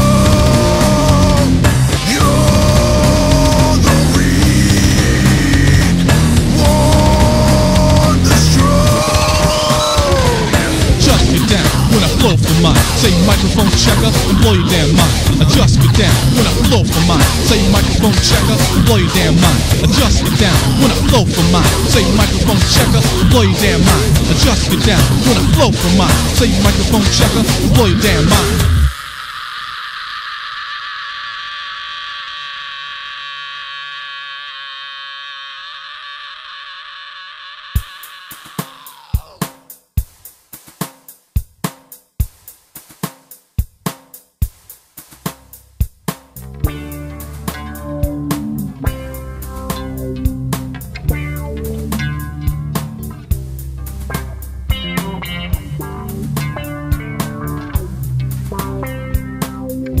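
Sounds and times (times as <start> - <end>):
rock band playing: 0.0 - 29.0, 46.3 - 60.0.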